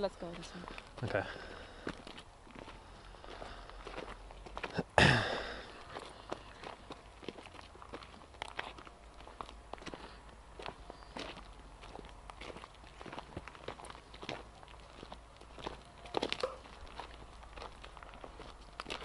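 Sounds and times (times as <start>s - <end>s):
footsteps on dirt trail: 0.0s - 19.0s.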